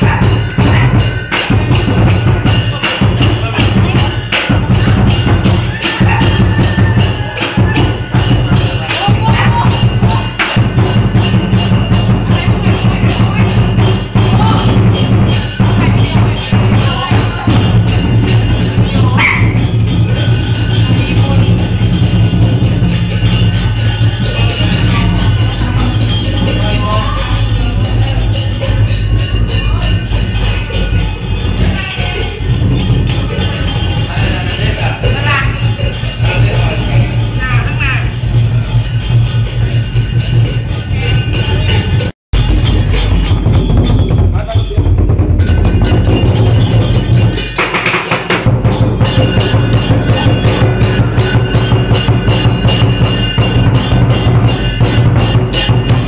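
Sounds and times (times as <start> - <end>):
big drum beating: 0.0 - 56.0
cymbals clashing: 0.0 - 56.0.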